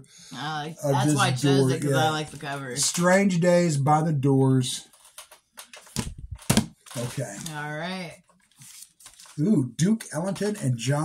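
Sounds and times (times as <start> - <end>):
cardboard record jackets rustling: 8.4 - 9.4.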